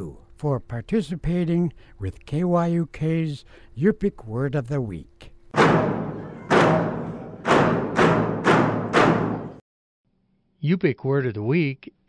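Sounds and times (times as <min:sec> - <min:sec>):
deep drum beats: 0:05.6 - 0:09.6.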